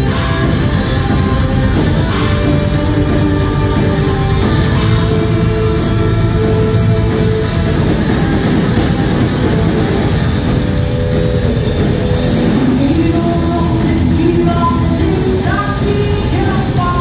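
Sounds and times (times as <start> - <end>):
live heavy metal band: 0.0 - 17.0.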